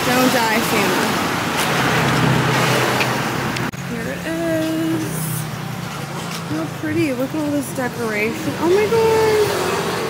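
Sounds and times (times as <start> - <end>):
traffic passing: 0.0 - 10.0.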